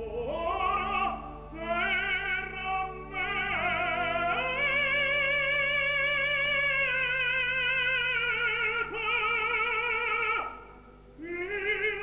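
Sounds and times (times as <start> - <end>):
operatic tenor singing: 0.0 - 10.6, 11.2 - 12.0.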